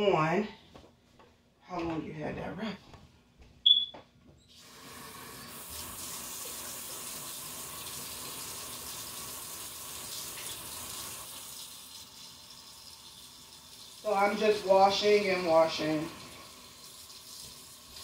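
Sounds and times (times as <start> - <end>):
water running into a sink: 4.5 - 18.0.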